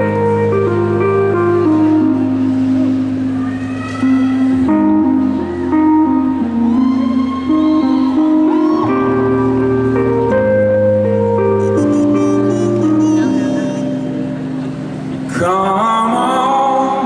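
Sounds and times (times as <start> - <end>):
bass guitar: 0.0 - 17.0.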